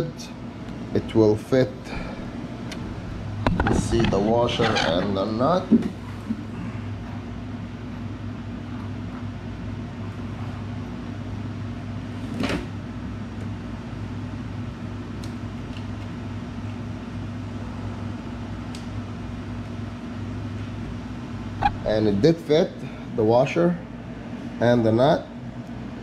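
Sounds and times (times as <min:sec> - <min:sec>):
low machine hum: 0:00.0 - 0:26.0.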